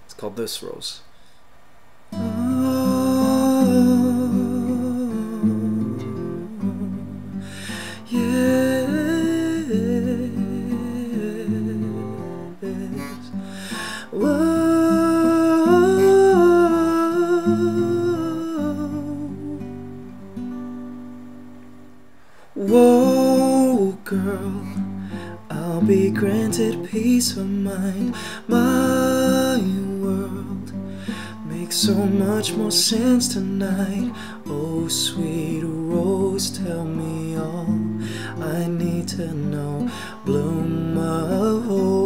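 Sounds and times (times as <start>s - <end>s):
strummed acoustic guitar: 2.1s - 42.0s
man singing wordless vocal runs: 2.2s - 7.0s, 8.0s - 19.6s, 22.6s - 24.8s, 25.5s - 30.7s, 31.3s - 42.0s.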